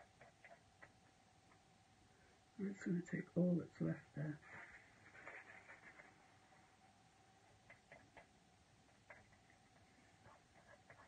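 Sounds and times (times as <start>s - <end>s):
paintbrush scratching on palette: 4.4s - 6.4s, 9.0s - 11.0s.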